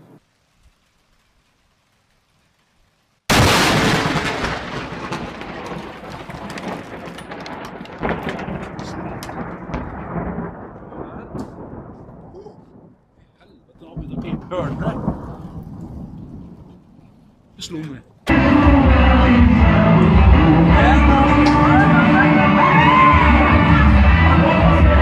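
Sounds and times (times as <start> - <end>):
loud thunderclap: 3.3 - 17.0.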